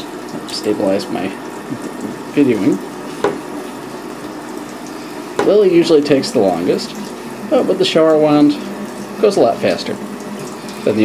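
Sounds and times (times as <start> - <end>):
shower water into bathtub: 0.0 - 11.0.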